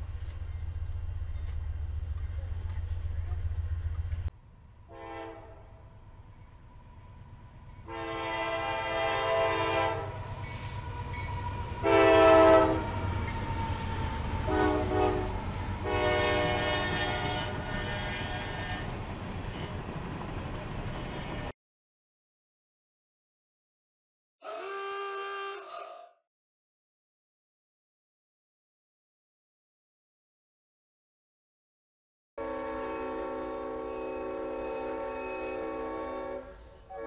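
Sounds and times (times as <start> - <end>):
rumble of passing train: 0.0 - 21.5, 32.4 - 37.0
train air horn blasts: 4.9 - 5.9, 7.8 - 19.8, 24.4 - 26.2, 32.4 - 37.0.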